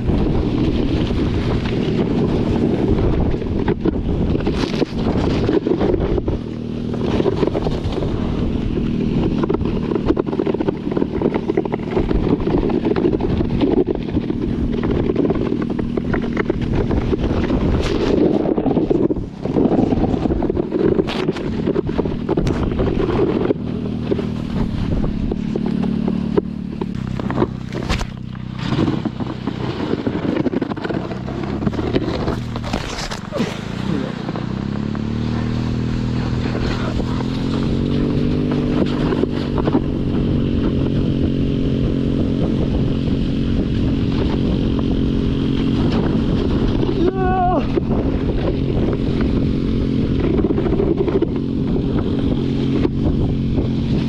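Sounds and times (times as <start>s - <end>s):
knocks and scrapes: 0.0s - 54.0s
small go-kart engine revving: 0.0s - 54.0s.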